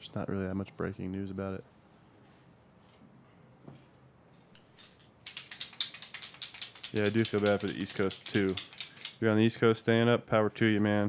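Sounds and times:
computer keyboard typing: 5.2s - 9.2s
man speaking: 6.9s - 11.0s.

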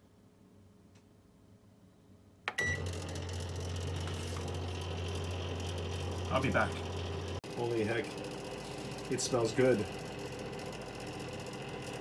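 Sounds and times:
microwave beep: 2.5s - 4.1s
microwave oven humming: 2.5s - 12.0s.

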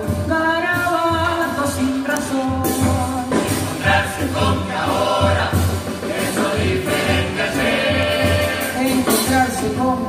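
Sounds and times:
chorus singing in harmony: 3.2s - 9.7s.

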